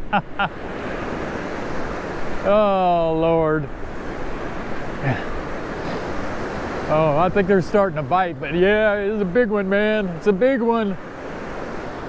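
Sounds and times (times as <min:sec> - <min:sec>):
surf breaking: 0:00.0 - 0:12.0.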